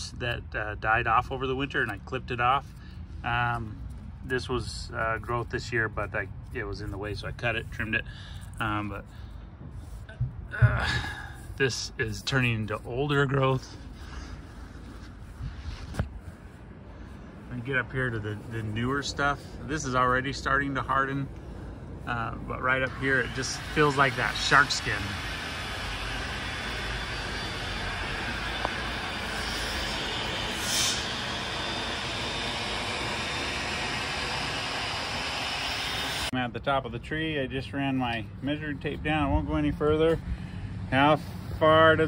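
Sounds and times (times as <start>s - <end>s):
faint outdoor background noise: 0.0s - 30.5s, 36.3s - 42.0s
distant traffic rumble and hiss: 0.0s - 42.0s
wind rumble on microphone: 14.7s - 22.5s.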